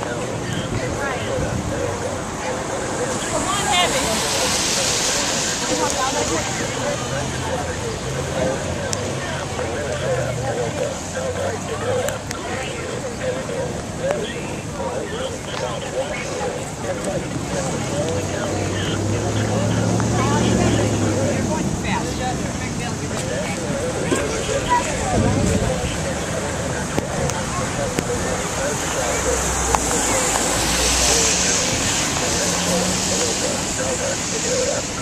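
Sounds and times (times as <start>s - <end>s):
faint crowd voices: 0.0s - 35.0s
vehicle engine passing: 0.0s - 35.0s.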